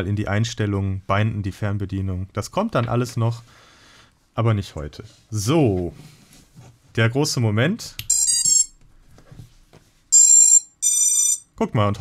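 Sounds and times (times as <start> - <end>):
electronic motor beeps: 10.2 - 11.4.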